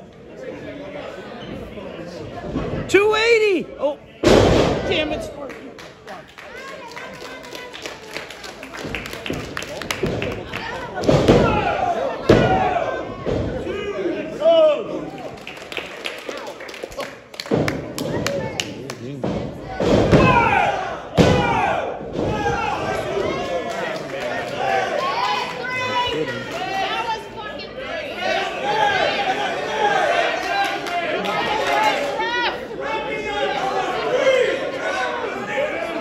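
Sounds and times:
crowd shouting and chattering: 0:00.0 - 0:36.0.

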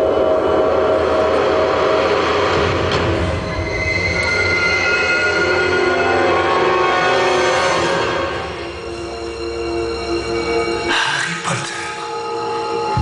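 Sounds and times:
loud soundtrack over speakers: 0:00.0 - 0:13.0.

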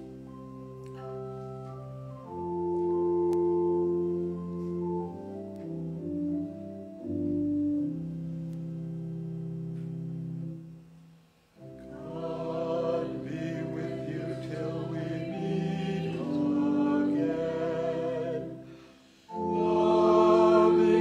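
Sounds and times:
organ playing hymn chords: 0:00.0 - 0:11.0, 0:11.6 - 0:21.0.

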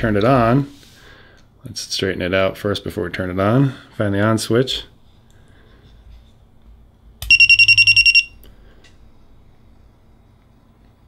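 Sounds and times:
rapid high electronic beeps: 0:07.2 - 0:08.3.

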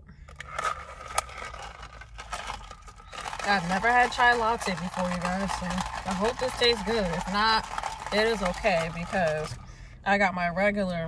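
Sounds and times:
straw wrapper crinkling: 0:00.3 - 0:09.6.

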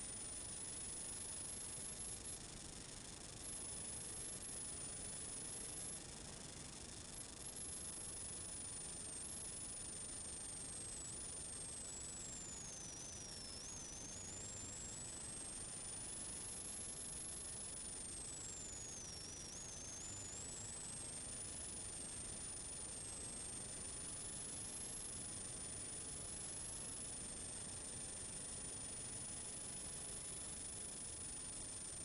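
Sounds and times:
faint high whines: 0:00.0 - 0:32.0
faint static hiss: 0:00.0 - 0:32.0.

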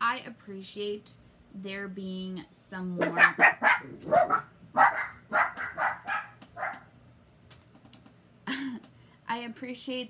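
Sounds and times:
dog barking: 0:03.0 - 0:06.9.

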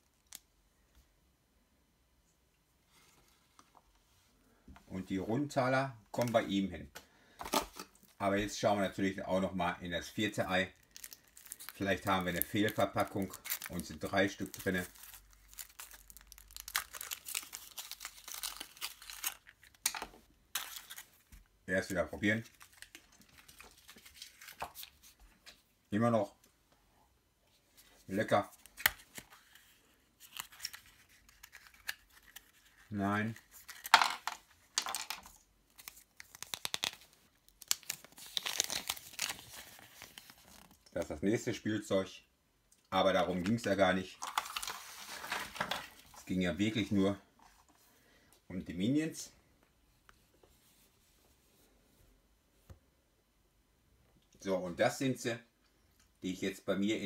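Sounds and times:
foil wrapper crinkling: 0:10.8 - 0:19.9, 0:30.2 - 0:34.0, 0:35.8 - 0:40.8.

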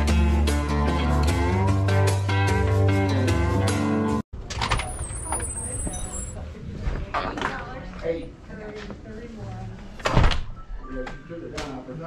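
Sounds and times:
guitar music: 0:00.0 - 0:04.2
door pushed open: 0:04.4 - 0:05.6.

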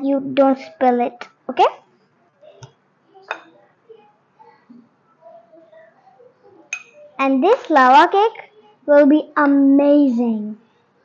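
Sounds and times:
metal spoon clinking on glass bowl: 0:06.7 - 0:07.1.

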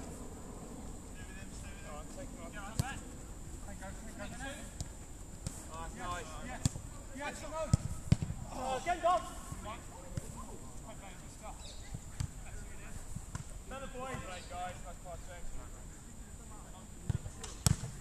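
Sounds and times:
football being kicked: 0:07.7 - 0:08.4, 0:17.1 - 0:18.0.

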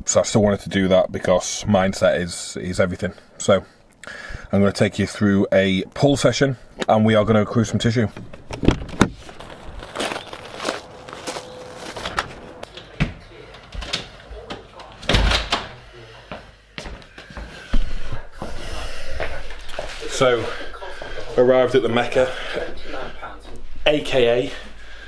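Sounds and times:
doors opening and shutting: 0:08.0 - 0:15.9.

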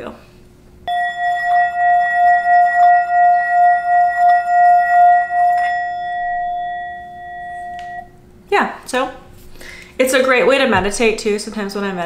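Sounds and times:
singing bowl ringing: 0:00.8 - 0:08.3.

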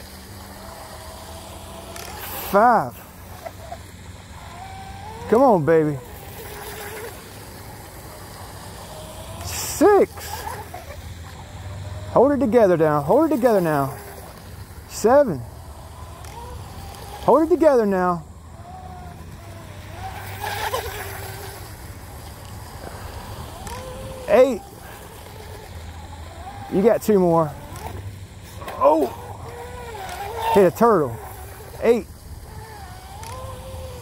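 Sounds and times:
faint thin motor whine: 0:00.0 - 0:34.0
steady background hiss: 0:00.0 - 0:34.0.

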